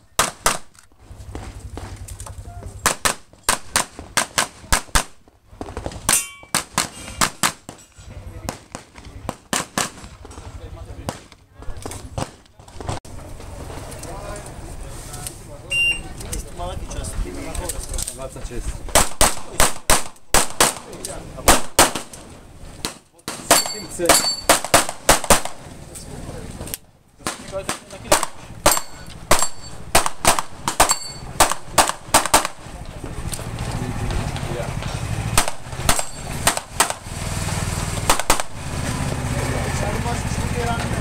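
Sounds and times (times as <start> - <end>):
pistol shots: 0.2 - 0.7, 2.8 - 7.8, 8.5 - 10.4, 18.9 - 22.2, 22.8 - 25.7, 27.2 - 32.7, 35.4 - 37.0, 38.0 - 38.6
steel targets ringing: 6.1 - 7.2, 23.5 - 24.6, 28.7 - 29.9, 30.8 - 31.4, 35.9 - 36.4.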